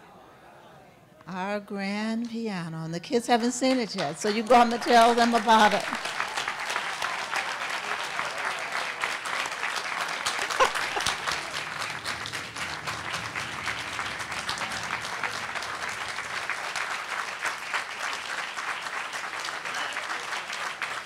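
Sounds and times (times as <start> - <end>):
audience applauding: 3.3 - 21.0.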